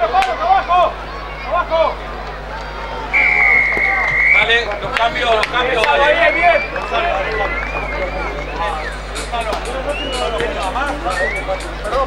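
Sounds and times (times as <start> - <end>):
crowd shouting: 0.0 - 12.0
referee's whistle blast: 3.1 - 4.6.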